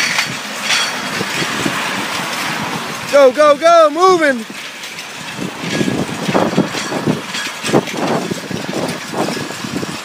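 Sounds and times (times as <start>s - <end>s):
metal frame scraping on concrete: 0.0s - 10.0s.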